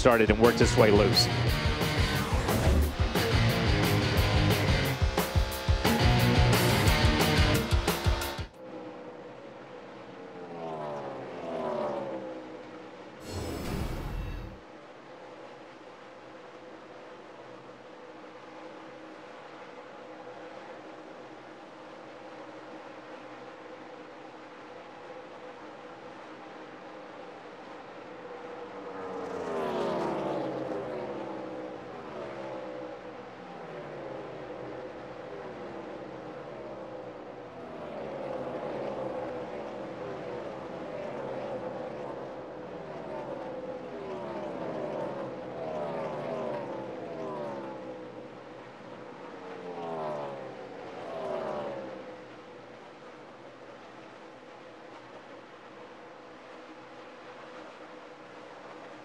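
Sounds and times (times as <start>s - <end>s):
cars passing by: 0.0s - 59.0s
race car engines droning: 0.0s - 59.0s.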